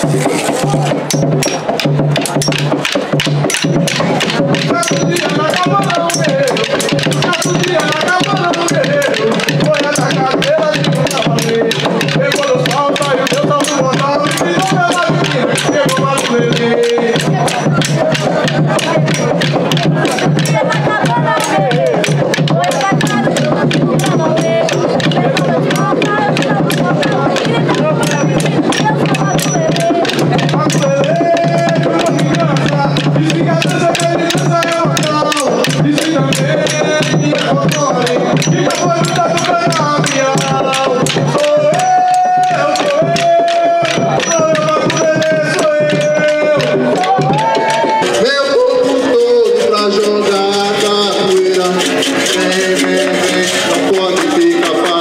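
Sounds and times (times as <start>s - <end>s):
fast percussion music: 0.0s - 55.0s
voices singing or chanting: 0.0s - 55.0s.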